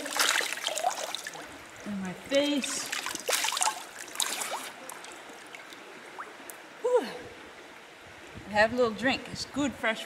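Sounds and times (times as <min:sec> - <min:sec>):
water dripping into stream: 0:00.0 - 0:01.5, 0:02.3 - 0:06.9
water splashing: 0:00.0 - 0:06.6.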